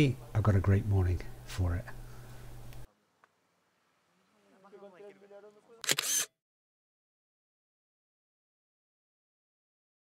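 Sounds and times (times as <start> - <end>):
camera shutter double click: 5.8 - 6.4.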